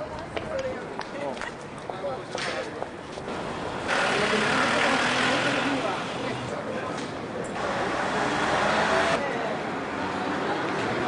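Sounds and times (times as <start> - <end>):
passers-by talking: 0.0 - 11.0
vehicle passing: 3.3 - 6.6.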